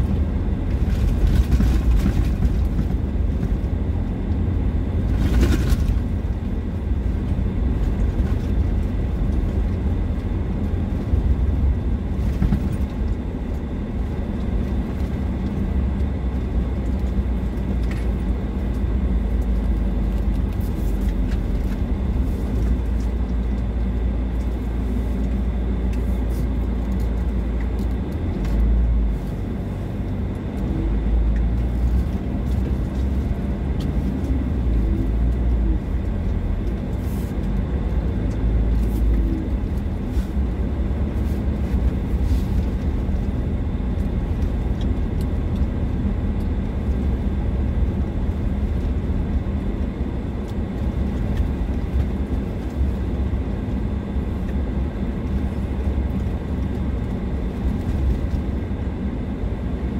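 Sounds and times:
car engine and tyres on gravel: 0:00.0 - 0:59.9.

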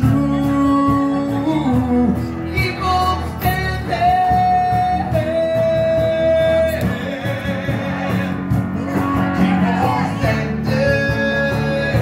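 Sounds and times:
live band with electric bass: 0:00.0 - 0:12.0.

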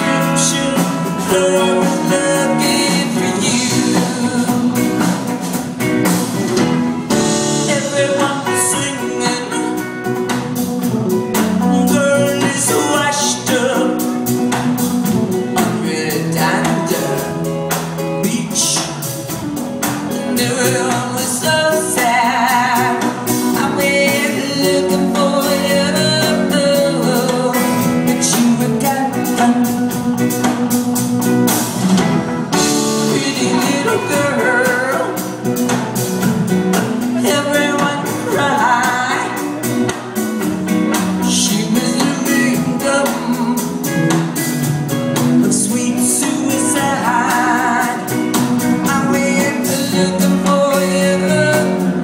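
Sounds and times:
woman singing lead vocal: 0:00.0 - 0:05.6, 0:07.2 - 0:10.4, 0:11.4 - 0:17.4, 0:20.1 - 0:30.6, 0:32.5 - 0:35.8, 0:36.7 - 0:40.2, 0:40.9 - 0:44.1, 0:45.4 - 0:52.0
bass guitar: 0:00.0 - 0:52.0
drums: 0:00.0 - 0:52.0
electric guitars: 0:00.0 - 0:52.0.

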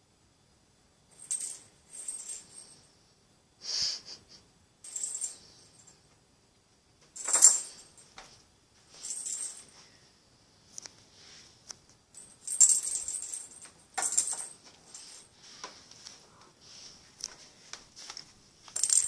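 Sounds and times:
small bell jingling: 0:01.1 - 0:02.9, 0:04.8 - 0:06.0, 0:07.2 - 0:08.2, 0:08.9 - 0:09.8, 0:12.1 - 0:15.4, 0:18.8 - 0:19.0.

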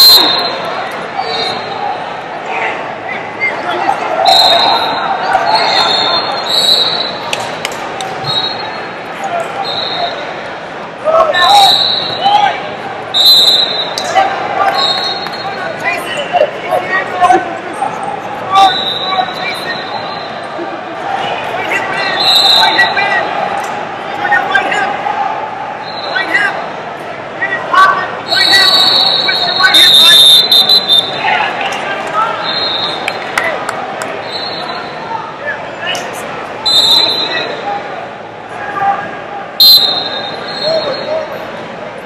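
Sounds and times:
shrill referee whistle blasts: 0:00.0 - 0:00.6, 0:04.2 - 0:07.2, 0:08.2 - 0:08.8, 0:09.6 - 0:10.2, 0:11.4 - 0:12.4, 0:13.1 - 0:14.1, 0:14.7 - 0:15.6, 0:18.6 - 0:20.4, 0:22.1 - 0:22.9, 0:28.3 - 0:31.2, 0:32.4 - 0:33.1, 0:34.2 - 0:35.0, 0:36.6 - 0:37.6, 0:39.6 - 0:41.2
coaches and spectators shouting: 0:00.0 - 0:42.0.

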